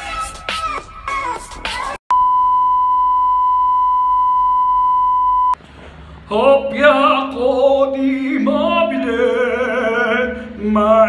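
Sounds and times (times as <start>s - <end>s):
steady electronic beep: 2.1s - 5.6s.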